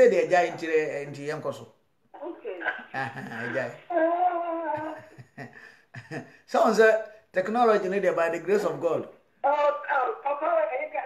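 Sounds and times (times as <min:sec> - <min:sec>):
person talking: 0:00.0 - 0:05.0, 0:06.5 - 0:11.0.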